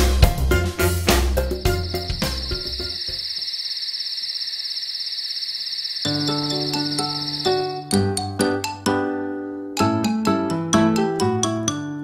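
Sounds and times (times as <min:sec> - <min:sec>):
children's song music: 0:00.0 - 0:03.2, 0:06.1 - 0:12.0
soft music: 0:00.0 - 0:03.2, 0:06.1 - 0:12.0
cricket chirring sound effect: 0:01.4 - 0:07.9.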